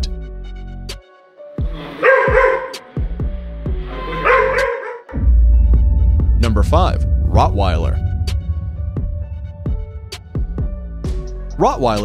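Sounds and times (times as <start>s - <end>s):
background music with bass: 0.0s - 12.0s
dog barking: 1.7s - 3.1s, 3.8s - 5.1s.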